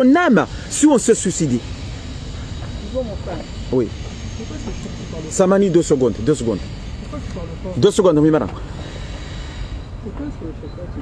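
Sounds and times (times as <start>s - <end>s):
man speaking: 0.0s - 1.7s, 2.8s - 8.6s.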